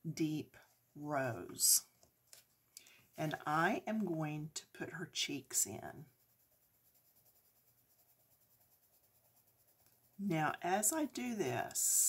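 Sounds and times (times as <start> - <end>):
colored pencil scratching on paper: 4.8 - 12.0.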